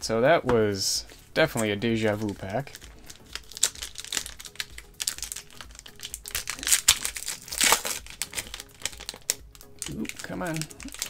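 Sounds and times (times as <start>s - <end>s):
foil wrapper tearing and crinkling: 1.5s - 11.0s.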